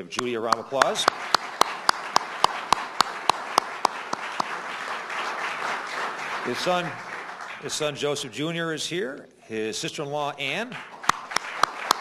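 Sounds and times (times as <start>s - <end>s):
sharp hand claps close up: 0.1s - 7.6s, 10.7s - 12.0s
audience applauding: 0.4s - 8.3s, 10.5s - 12.0s.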